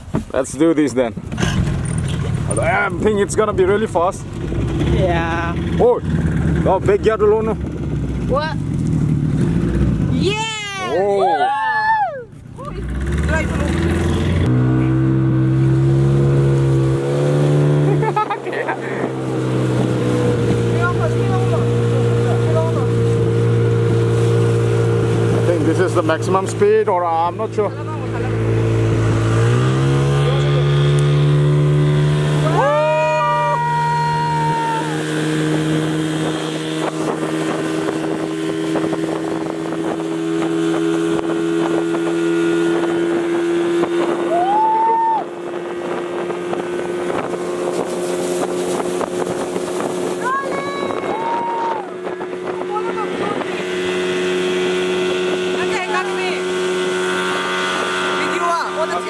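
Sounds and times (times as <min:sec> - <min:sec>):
outboard motor running: 0:00.0 - 0:59.0.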